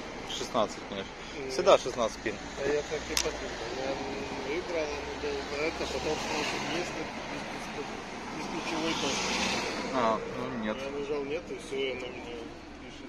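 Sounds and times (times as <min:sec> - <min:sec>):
outdoor noise: 0:00.0 - 0:13.0.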